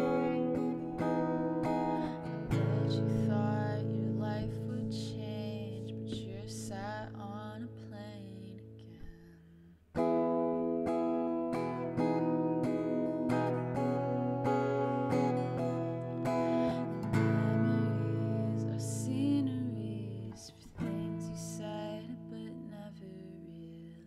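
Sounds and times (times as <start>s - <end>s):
acoustic guitar strummed chords: 0.0s - 8.4s, 10.0s - 23.7s
woman singing: 0.0s - 24.0s.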